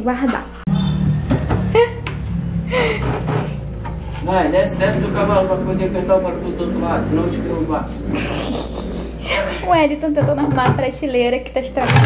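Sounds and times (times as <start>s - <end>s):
background music: 0.7s - 10.2s.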